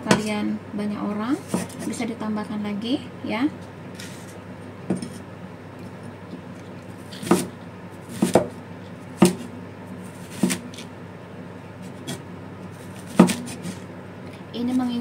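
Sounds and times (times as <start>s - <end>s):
cleaver chopping on wooden board: 7.2s - 7.5s, 8.1s - 8.6s, 9.2s - 9.5s, 10.3s - 10.8s, 13.1s - 13.6s.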